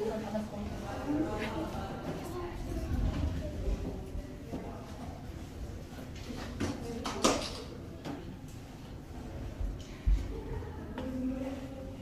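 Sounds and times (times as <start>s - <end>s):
low rumble of a large hall: 0.0s - 12.0s.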